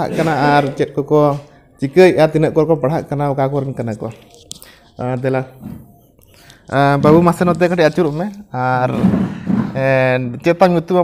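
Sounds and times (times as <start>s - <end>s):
man talking: 0.0s - 5.9s, 6.6s - 11.0s.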